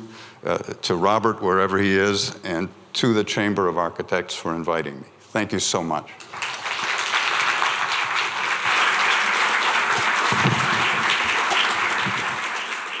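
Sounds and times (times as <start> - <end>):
audience applauding: 6.2 - 13.0.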